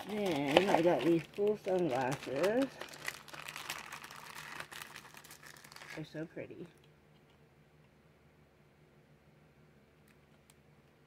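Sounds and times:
packaging crinkling: 0.0 - 6.2.

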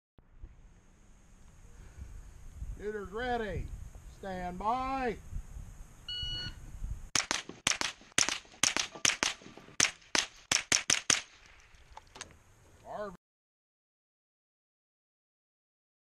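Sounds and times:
electronic start beep: 6.1 - 6.6
rapid gunfire: 7.2 - 11.6.

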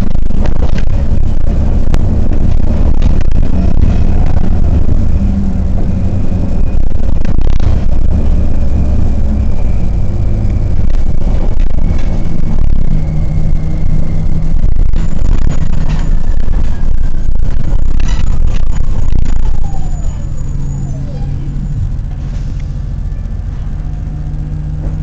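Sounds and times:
bus rumbling inside cabin: 0.0 - 25.0.

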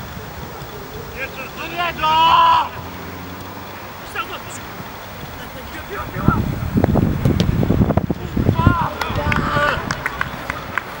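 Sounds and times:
men shouting: 1.1 - 6.6, 8.2 - 10.1.

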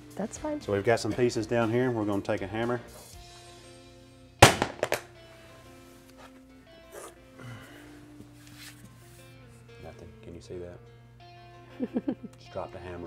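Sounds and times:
hammer dropped on vinyl flooring: 4.4 - 5.1.

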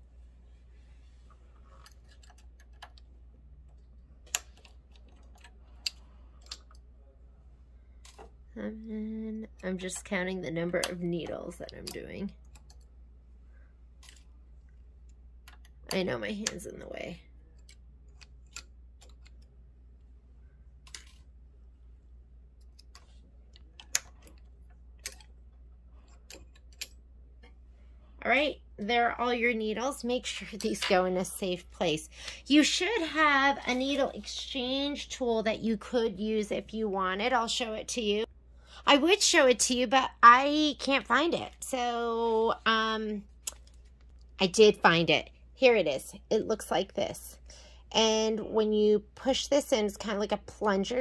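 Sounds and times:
small clicks of steel needles: 3.7 - 6.8, 17.5 - 19.5, 22.6 - 25.4, 26.0 - 27.6.

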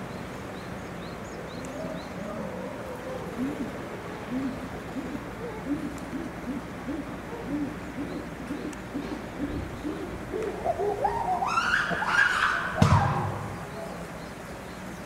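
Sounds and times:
chimpanzee hooting and screaming: 10.4 - 13.4
sharp thump: 12.8 - 13.4.

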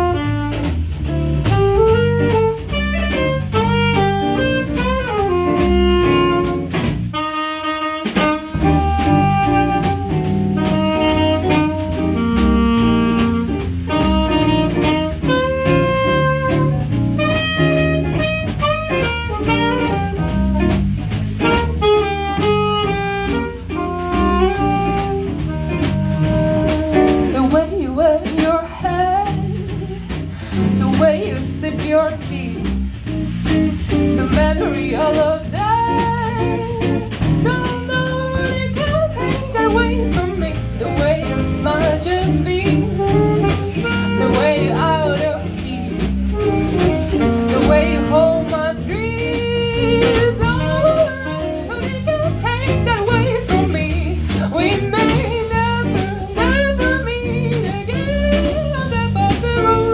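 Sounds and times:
saxophone melody: 0.0 - 59.9
swing band playing: 0.0 - 59.9.

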